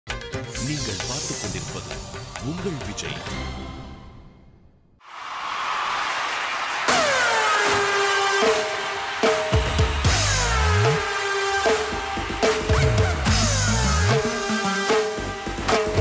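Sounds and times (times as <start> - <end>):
drum kit hits: 6.9 - 16.0
heavy bass: 7.2 - 16.0.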